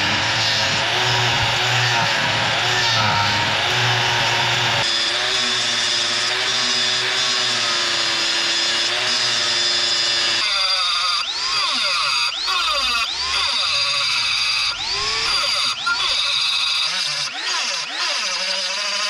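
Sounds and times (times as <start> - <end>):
angle grinder grinding steel: 0.0 - 19.0.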